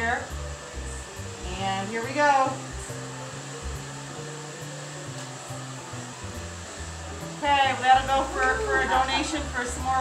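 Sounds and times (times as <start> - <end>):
steady hiss: 0.1 - 10.0.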